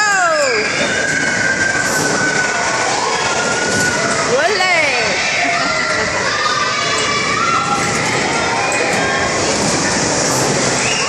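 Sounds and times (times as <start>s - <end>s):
bumper cars running: 0.0s - 11.0s
faint children's voices: 2.6s - 11.0s.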